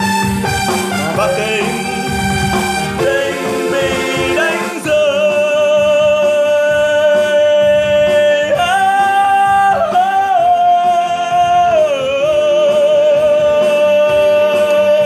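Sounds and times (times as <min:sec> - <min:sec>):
backing music: 0:00.0 - 0:15.0
voice holding long notes: 0:00.9 - 0:15.0.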